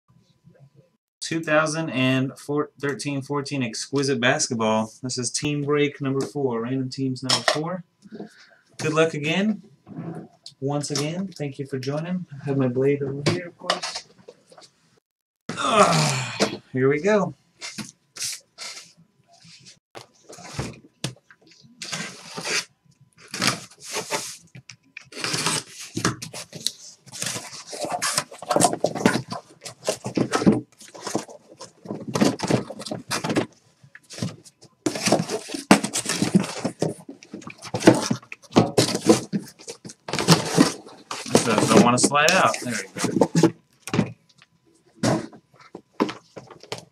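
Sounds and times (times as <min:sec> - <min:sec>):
cardboard rustling and scraping: 0:17.6 - 0:44.2, 0:44.9 - 0:46.9
blade cutting cardboard: 0:25.1 - 0:29.4
boxes sliding out: 0:34.1 - 0:43.6.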